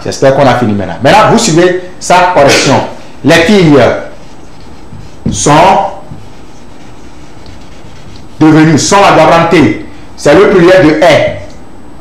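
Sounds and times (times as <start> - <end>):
constant hiss: 0.0 - 12.0.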